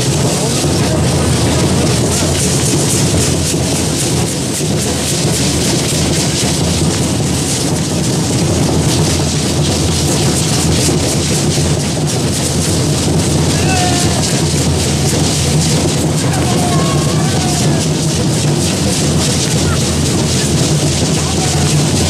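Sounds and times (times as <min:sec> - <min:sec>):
dancers' rattles: 0:00.0 - 0:22.0
drumming: 0:00.0 - 0:22.0.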